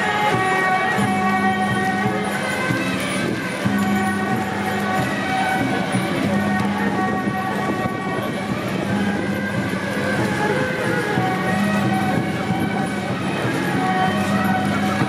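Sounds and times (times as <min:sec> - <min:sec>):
crowd noise: 0:00.0 - 0:15.0
procession music with horn-like tones: 0:00.0 - 0:15.0
street noise: 0:00.0 - 0:15.0.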